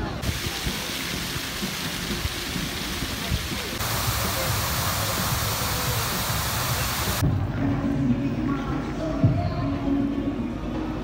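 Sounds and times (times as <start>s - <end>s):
fountain water splashing: 0.0s - 7.2s.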